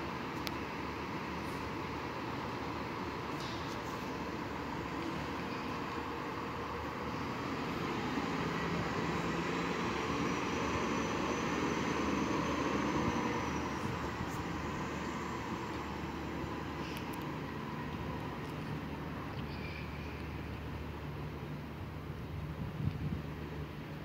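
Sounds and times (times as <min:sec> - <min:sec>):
traffic noise: 0:00.0 - 0:24.0
faint high whine: 0:00.1 - 0:21.5.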